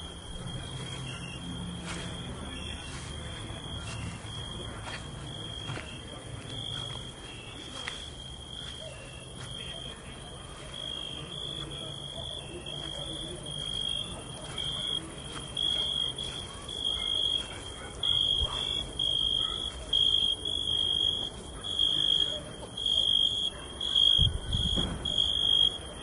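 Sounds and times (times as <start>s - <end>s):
cricket chirping: 0.0s - 26.0s.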